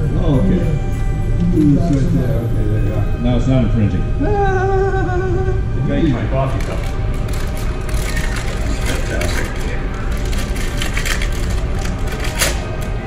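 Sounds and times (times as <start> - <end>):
music playing: 0.0 - 13.0
wrapping paper crinkling and tearing: 6.5 - 13.0.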